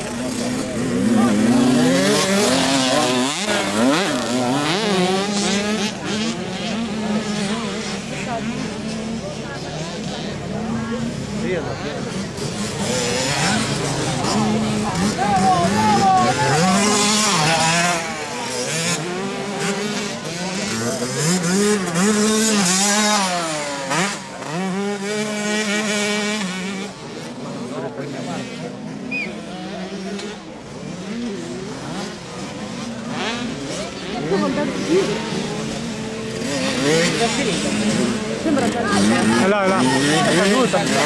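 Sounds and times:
motocross bikes revving: 0:00.0 - 0:41.0.

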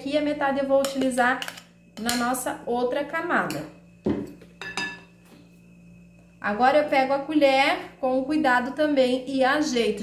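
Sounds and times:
metal spoon clinking on glass bowl: 0:04.6 - 0:05.1.

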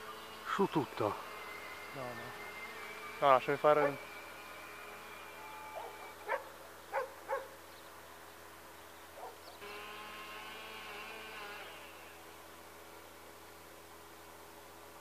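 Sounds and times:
model airplane motor whining: 0:00.0 - 0:06.5, 0:09.6 - 0:12.5.

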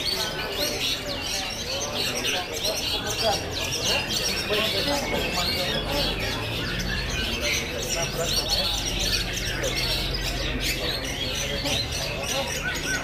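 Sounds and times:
chorus of birds singing: 0:00.0 - 0:13.0
murmur of crowd voices: 0:00.0 - 0:13.0.

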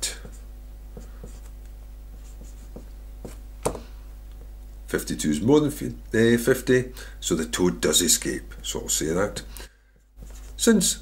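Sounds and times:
steady low hum: 0:00.0 - 0:11.0
marker pen writing on board: 0:00.1 - 0:01.6, 0:02.2 - 0:03.8.

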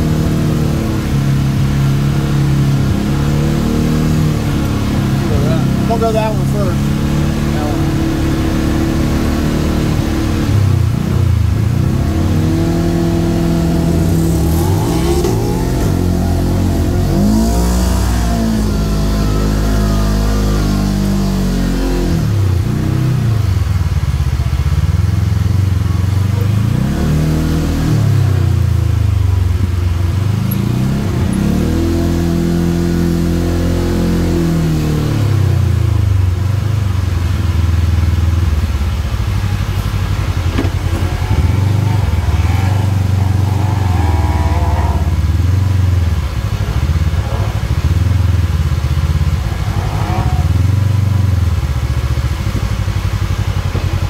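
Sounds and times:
off-road vehicle engine revving: 0:00.0 - 0:54.0.

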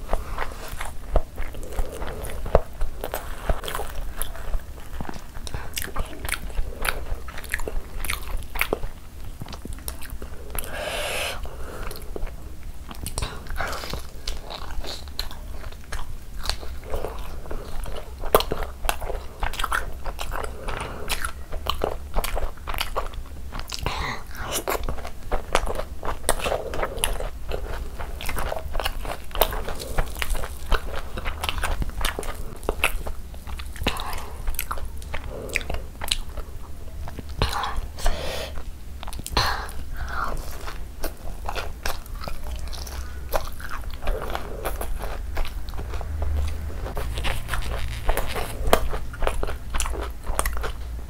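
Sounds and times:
person chewing food: 0:00.0 - 0:51.0.

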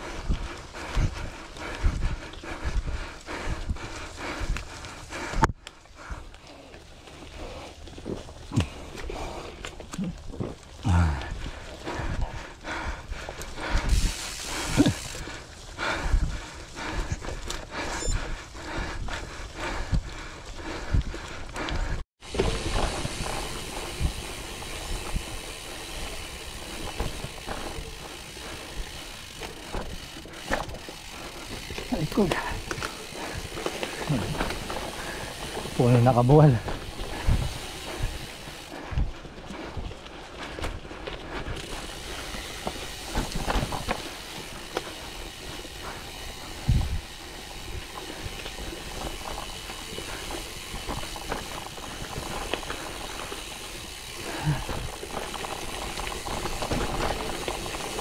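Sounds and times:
bike rattling over dirt trail: 0:00.0 - 0:58.0.

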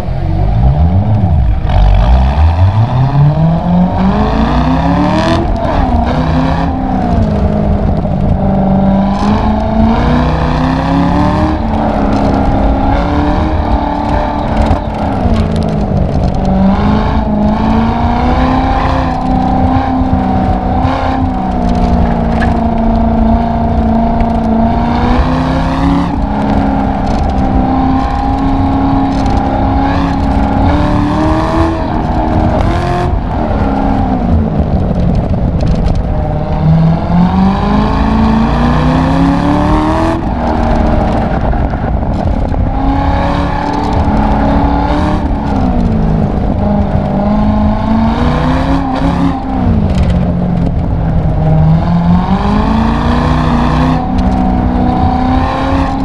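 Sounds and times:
road rumble: 0:00.0 - 0:56.0
sports car engine revving: 0:00.0 - 0:56.0
wind: 0:00.0 - 0:56.0.

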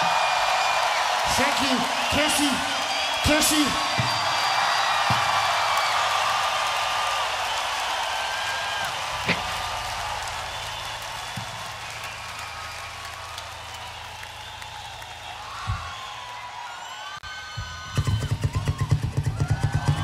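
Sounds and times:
crowd cheering and whistling: 0:00.0 - 0:20.0.

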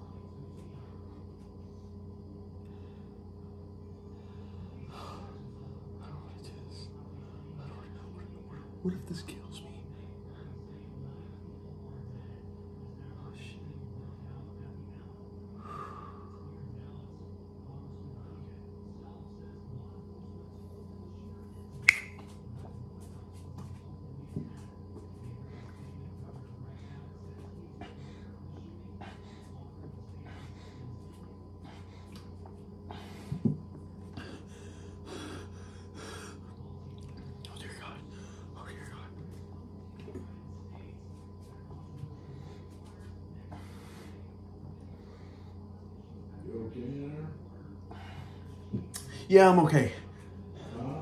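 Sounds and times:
low room hum: 0:00.0 - 0:51.0
sharp click: 0:21.9 - 0:22.2.

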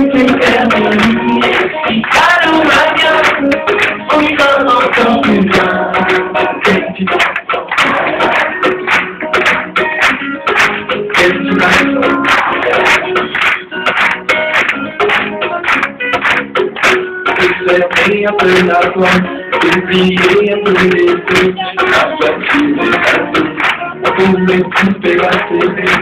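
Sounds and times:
plucked acoustic guitar: 0:00.0 - 0:26.0
rhythmic percussion: 0:00.0 - 0:26.0.

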